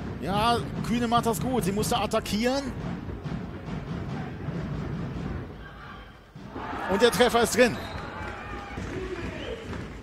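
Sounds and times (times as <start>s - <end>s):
hall crowd noise: 0.0s - 10.0s
large drums beating: 0.0s - 10.0s.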